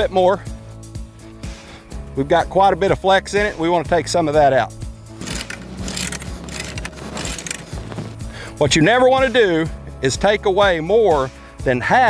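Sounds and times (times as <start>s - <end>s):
background music: 0.0s - 12.0s
metallic clicks of fence tensioner: 5.2s - 8.0s.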